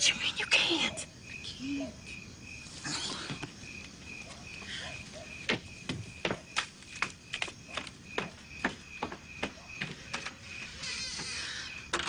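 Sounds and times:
crickets chirping: 0.0s - 12.0s.

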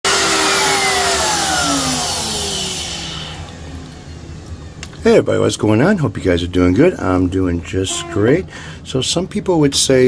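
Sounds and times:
power tool motor winding down: 0.1s - 3.6s.

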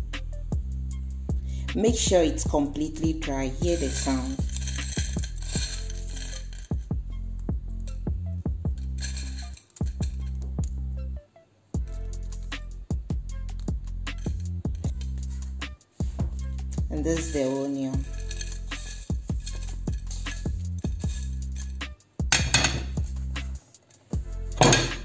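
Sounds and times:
background music with bass: 0.0s - 25.0s.

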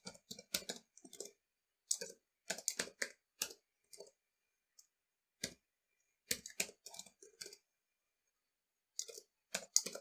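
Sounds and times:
keyboard typing: 0.0s - 4.3s, 5.4s - 7.8s, 8.9s - 10.0s.

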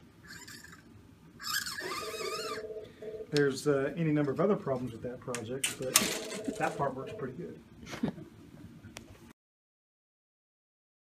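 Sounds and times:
plastic rod squeaking in wheels: 0.3s - 0.8s, 1.4s - 2.6s.

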